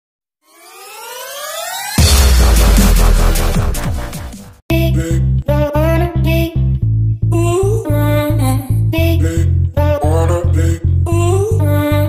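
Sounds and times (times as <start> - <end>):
electronic riser tone gliding upward: 0.4 - 4.1.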